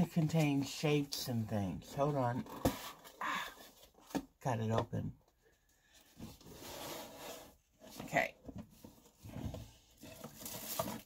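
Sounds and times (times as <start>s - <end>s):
cardboard box rustling: 6.0s - 11.0s.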